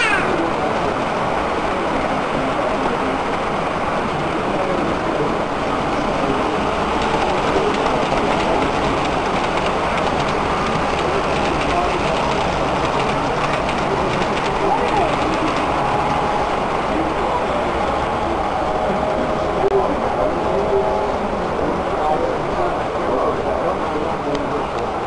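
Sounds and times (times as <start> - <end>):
model train wheels clicking on track: 0.0 - 16.2
people talking: 0.0 - 25.0.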